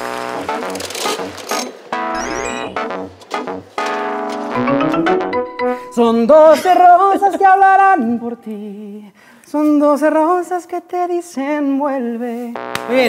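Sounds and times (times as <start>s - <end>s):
pulsing bass: 0.0s - 3.7s
keyboard jingle chords: 0.0s - 6.9s
rising run of notes: 0.3s - 6.4s.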